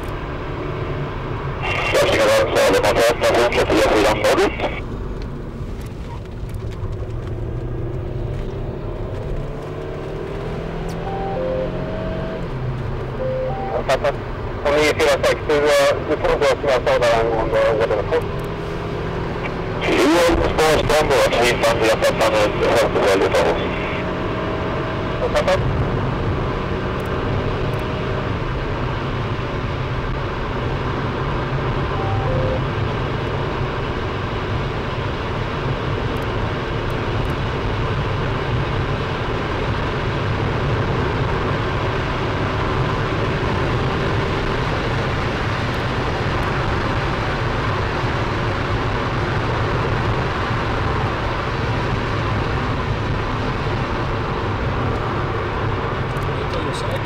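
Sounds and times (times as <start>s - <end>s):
car interior road drone: 0.0s - 57.0s.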